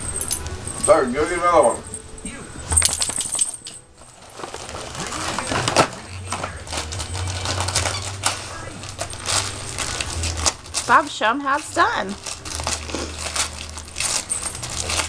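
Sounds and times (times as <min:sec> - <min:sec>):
wrapping paper crinkling: 0:02.7 - 0:15.0.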